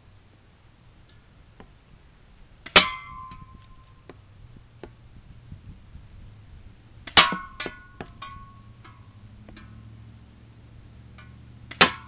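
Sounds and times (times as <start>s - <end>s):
metallic can clang: 2.7s - 3.4s, 7.1s - 9.0s.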